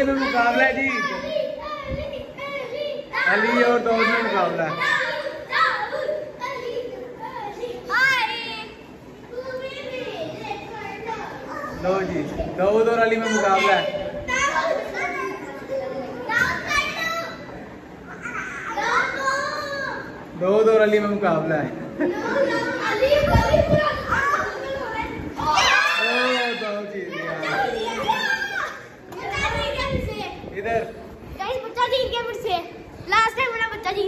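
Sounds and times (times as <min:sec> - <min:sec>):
children calling out and chattering: 0:00.0 - 0:34.0.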